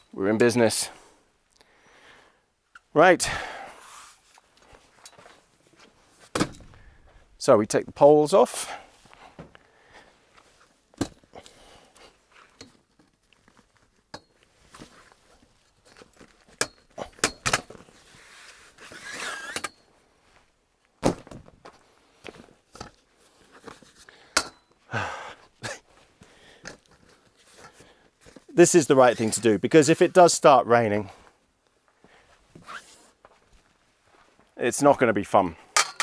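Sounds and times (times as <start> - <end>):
pole scraping across fabric: 3.8 - 4.4, 18.0 - 19.7.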